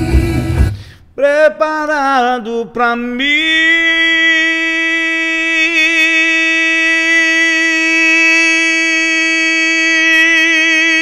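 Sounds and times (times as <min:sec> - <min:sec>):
man singing a long high note: 0:01.2 - 0:11.0.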